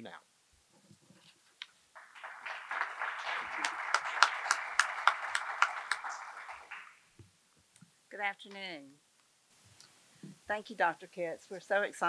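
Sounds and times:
audience applauding: 2.0 - 7.1.

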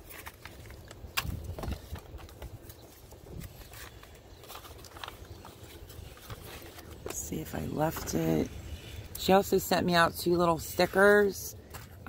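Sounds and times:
clicks and rustles of handling: 0.0 - 9.4
wind buffeting microphone: 1.1 - 4.6.

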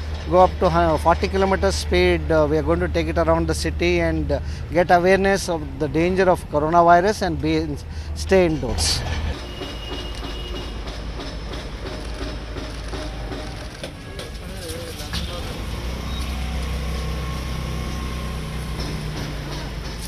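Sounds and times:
small car engine droning: 13.4 - 20.0.

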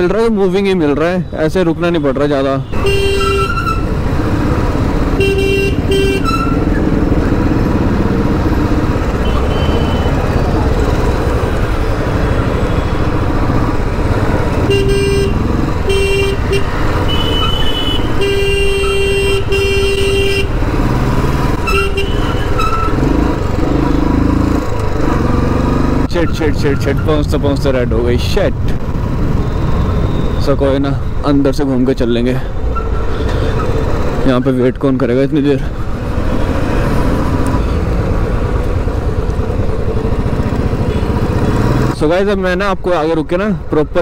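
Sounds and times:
vehicle horns honking: 1.9 - 4.0, 5.1 - 6.8, 9.2 - 10.3, 14.5 - 20.6, 21.6 - 23.0, 40.8 - 41.3
motorcycle engine running: 4.2 - 17.2.

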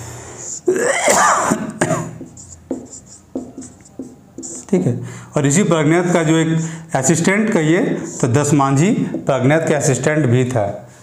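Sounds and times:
man clearing his throat: 0.7 - 2.3
marker squeaking on whiteboard: 2.1 - 4.8.

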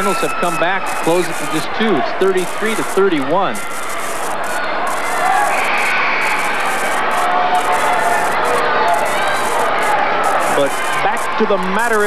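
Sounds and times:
crowd of voices talking: 0.0 - 12.0.

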